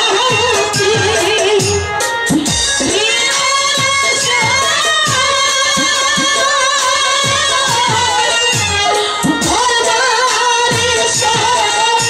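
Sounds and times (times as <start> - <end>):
musical accompaniment: 0.0 - 12.0
woman singing folk song: 2.8 - 12.0.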